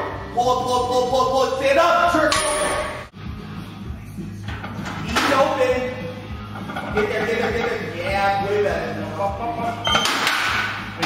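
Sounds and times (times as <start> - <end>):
music: 0.0 - 11.0
voices: 4.2 - 9.9.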